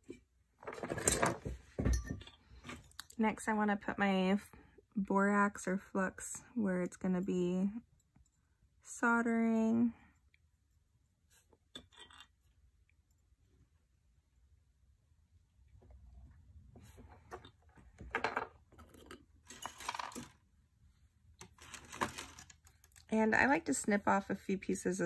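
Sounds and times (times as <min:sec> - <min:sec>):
small metal pieces clinking: 0:19.0 - 0:20.4
handling rustles: 0:21.4 - 0:23.0.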